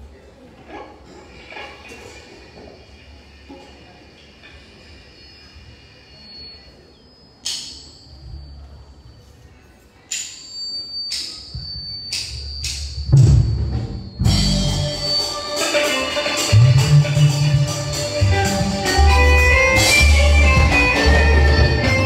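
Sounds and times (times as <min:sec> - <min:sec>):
sharp ringing percussion strikes: 0:05.0 - 0:09.3, 0:10.0 - 0:22.0
music: 0:11.1 - 0:22.0.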